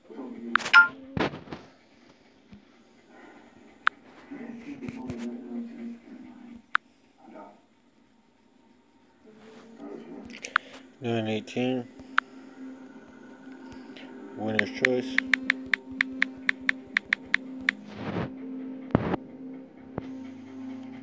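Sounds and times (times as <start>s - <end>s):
faint low voices murmuring: 0.0s - 21.0s
sharp clicks: 14.6s - 17.8s.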